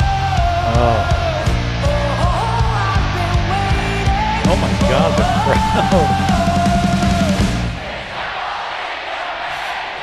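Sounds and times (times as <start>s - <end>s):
woman singing: 0.0s - 4.4s
bass guitar: 0.0s - 7.7s.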